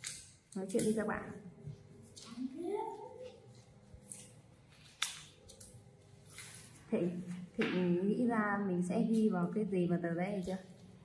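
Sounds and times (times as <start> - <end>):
paper rustling and folding: 2.0 - 7.4.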